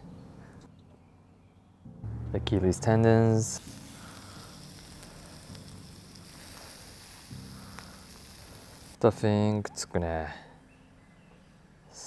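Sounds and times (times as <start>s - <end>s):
meat sizzling on grill: 3.6s - 9.0s
small crackles: 3.6s - 9.0s.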